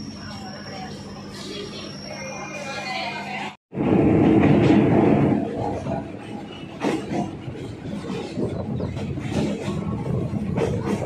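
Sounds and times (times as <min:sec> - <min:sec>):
train wheels rumbling on track: 0:03.7 - 0:11.0
sharp clacks of train wheels: 0:04.3 - 0:11.0.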